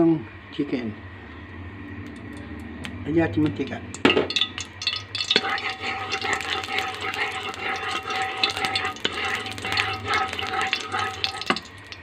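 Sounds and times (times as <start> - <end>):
cooking oil hissing and crackling: 3.9 - 12.0.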